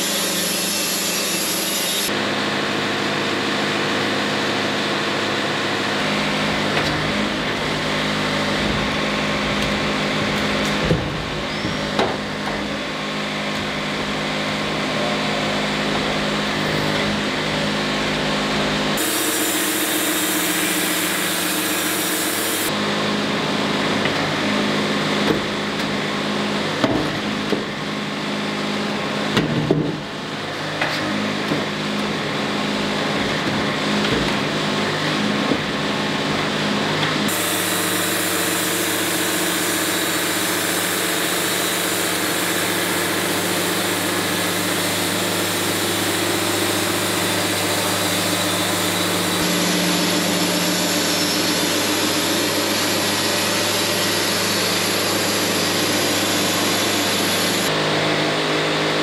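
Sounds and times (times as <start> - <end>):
bandsaw mill hum: 0.0 - 59.0
band blade hissing in wood: 19.0 - 22.7, 37.3 - 57.7.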